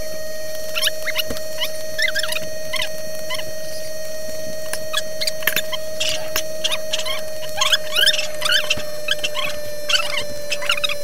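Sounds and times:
steady hum: 0.0s - 11.0s
small animal squeaking: 0.7s - 4.0s, 4.6s - 11.0s.

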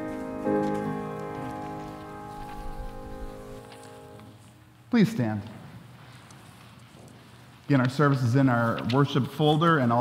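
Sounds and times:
held hymn chord: 0.0s - 4.6s
faint rustles and clicks: 0.0s - 4.8s, 5.4s - 9.6s.

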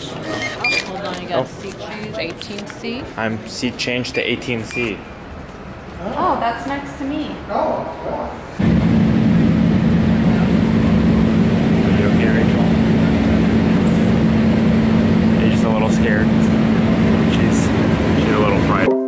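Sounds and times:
airliner cabin engine drone: 8.6s - 18.9s
constant low hum: 8.6s - 18.9s.

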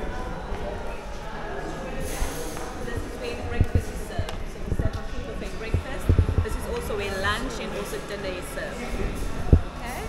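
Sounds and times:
indistinct voices: 1.6s - 10.0s.

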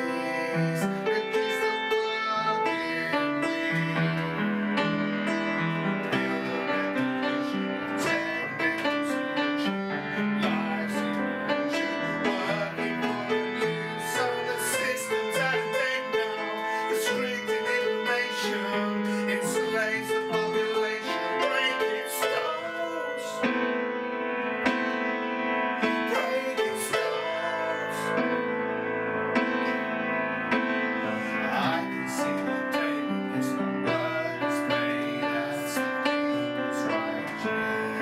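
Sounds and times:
man singing: 0.0s - 23.8s, 25.8s - 28.8s, 31.0s - 38.0s
upright piano accompaniment: 0.0s - 38.0s.

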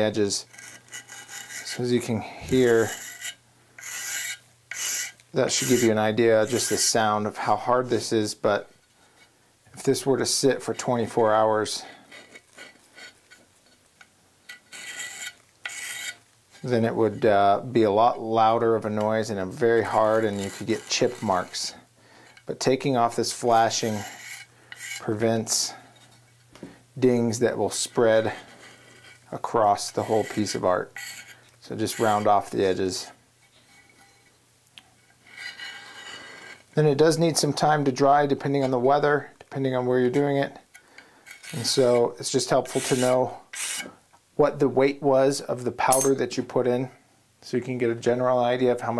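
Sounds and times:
metal scraping plaster cast: 0.0s - 7.6s, 10.7s - 17.3s, 18.8s - 26.2s, 27.3s - 34.4s, 35.0s - 36.7s, 40.0s - 44.0s.

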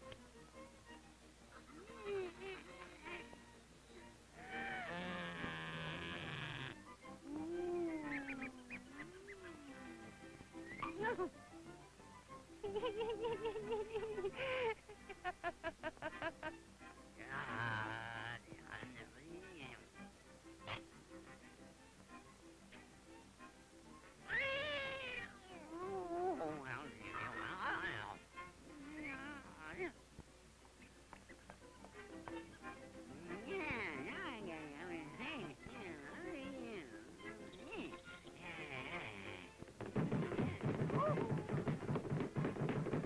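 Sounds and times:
light background music: 0.0s - 43.0s
cartoon cat yowling: 4.4s - 5.2s, 24.3s - 26.4s.

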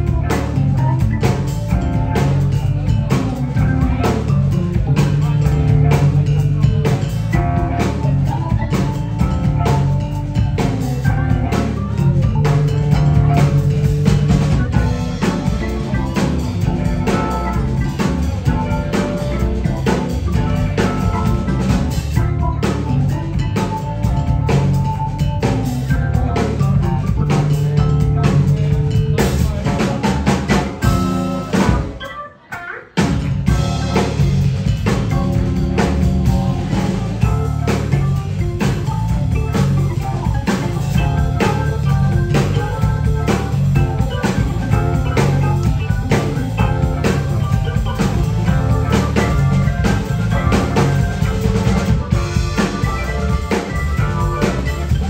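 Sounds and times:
bass line: 0.0s - 32.1s, 33.0s - 55.0s
funk band playing live: 0.0s - 55.0s.

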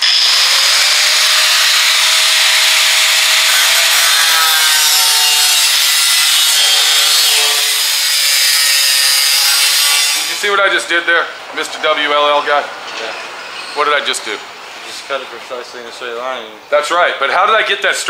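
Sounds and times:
cut-off wheel grinding sheet steel: 0.0s - 10.5s.

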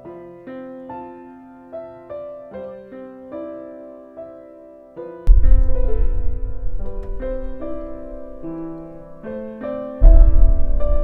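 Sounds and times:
gentle piano melody: 0.0s - 11.0s
deep low rumble: 5.3s - 9.2s, 10.0s - 11.0s.

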